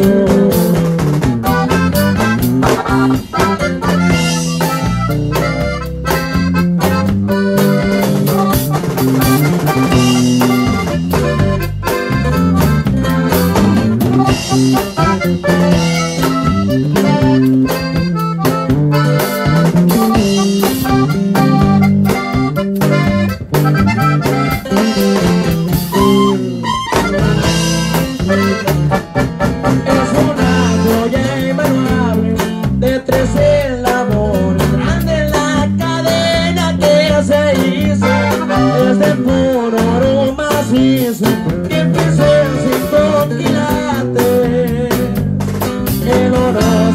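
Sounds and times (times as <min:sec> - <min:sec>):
accordion: 0:00.0 - 0:46.9
drums: 0:00.0 - 0:46.9
guitar: 0:00.0 - 0:46.9.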